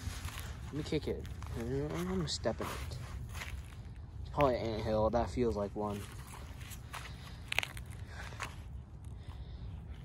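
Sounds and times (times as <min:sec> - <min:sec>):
shoe crunching on dry leaves: 0:00.0 - 0:04.4.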